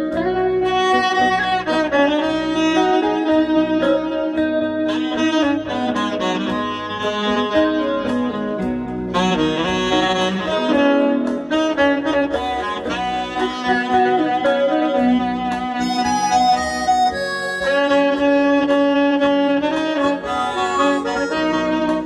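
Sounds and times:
alto saxophone melody: 0.0s - 22.0s
bass: 0.0s - 22.0s.

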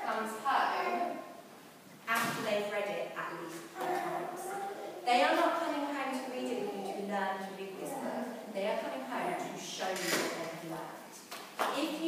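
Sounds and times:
woman speaking: 0.0s - 1.2s, 2.1s - 12.0s.

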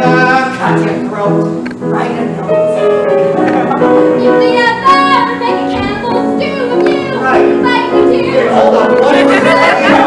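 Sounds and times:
piano accompaniment: 0.0s - 10.0s
woman singing a show tune: 4.2s - 10.0s.

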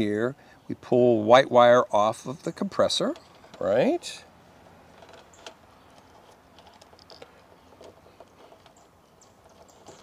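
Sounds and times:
fingers rustling wires: 4.9s - 10.0s.

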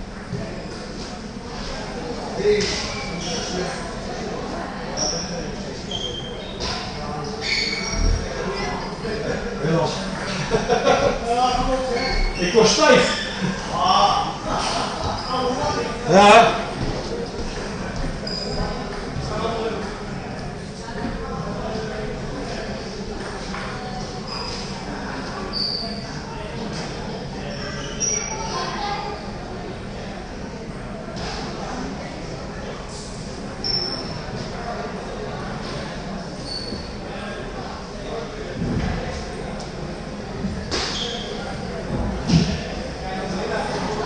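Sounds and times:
murmur of voices: 0.0s - 44.0s
room noise in a large hall: 0.0s - 44.0s.

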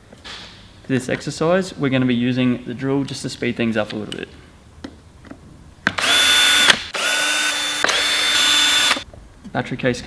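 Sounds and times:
cordless drill motor whine: 6.0s - 9.0s.

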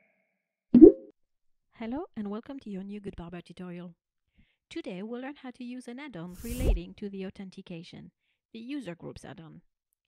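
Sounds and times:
cartoon pop with upward swoop: 0.8s - 1.1s.

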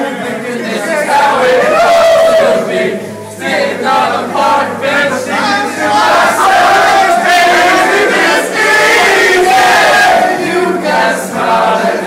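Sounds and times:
men singing loudly together: 0.0s - 12.0s.

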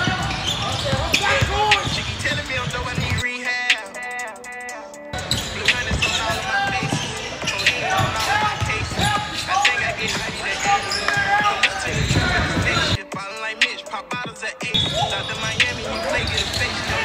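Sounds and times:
basketball dribbling on wood floor: 0.0s - 3.2s, 5.8s - 10.4s
sneakers squeaking: 0.0s - 17.0s
voices in a gym: 0.0s - 17.0s.

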